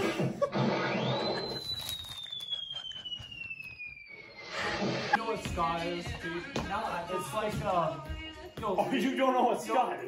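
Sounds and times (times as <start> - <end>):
high falling whistle tone: 0.9 - 5.2.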